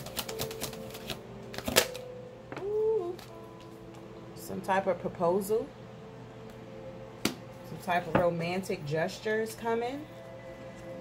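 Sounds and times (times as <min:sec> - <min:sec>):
cards being shuffled: 0:00.0 - 0:02.0.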